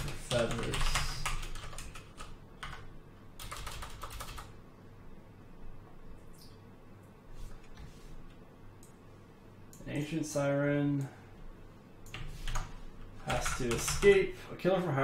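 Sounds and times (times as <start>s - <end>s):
computer keyboard typing: 0.0s - 4.6s, 12.0s - 14.2s.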